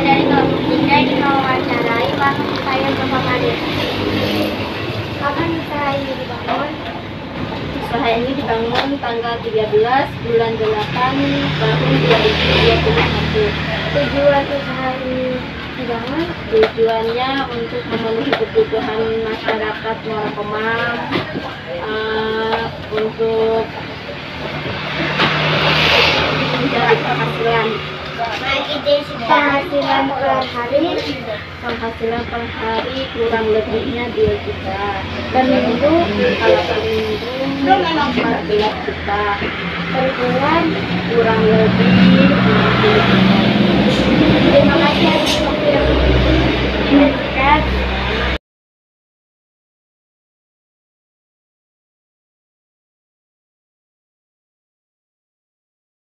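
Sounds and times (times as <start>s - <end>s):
people talking: 0.0s - 23.8s, 24.4s - 48.4s
passing vehicle engine: 0.0s - 48.4s.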